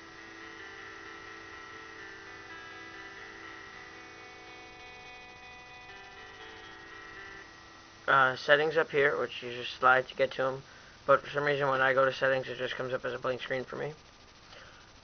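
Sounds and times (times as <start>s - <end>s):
synthesized guitar chord: 0.0s - 9.3s.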